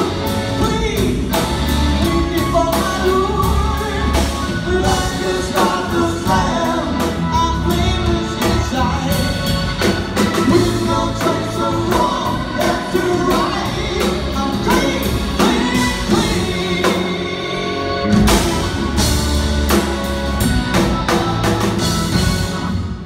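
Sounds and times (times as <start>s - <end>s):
man singing: 0.0s - 19.2s, 20.8s - 22.2s
rock band playing: 0.0s - 23.0s.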